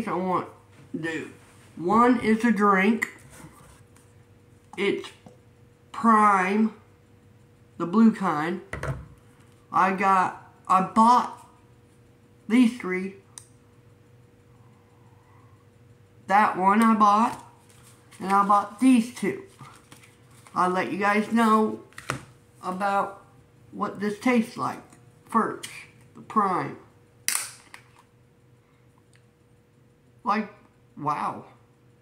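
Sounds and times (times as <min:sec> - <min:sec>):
faint steady hum: 0:00.0 - 0:32.0
plastic bottle cap seal cracking: 0:27.3 - 0:27.9.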